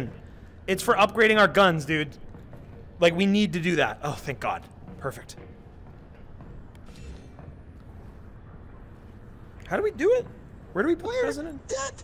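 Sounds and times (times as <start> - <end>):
video game ambience hum: 0.0 - 12.0.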